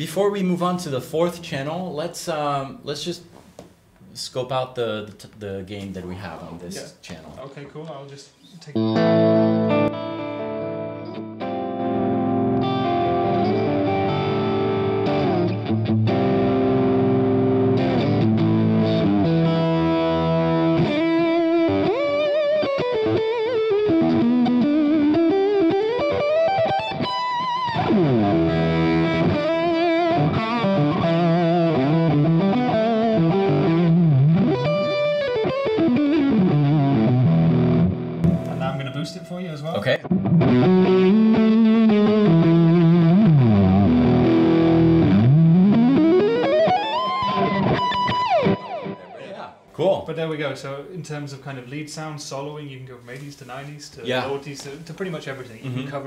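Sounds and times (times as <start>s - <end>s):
distorted electric guitar lead: 8.7s - 39.0s, 39.9s - 49.3s.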